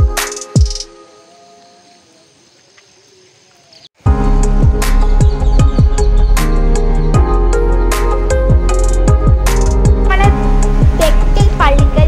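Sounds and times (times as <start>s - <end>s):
faint background music: 10.0s - 12.0s.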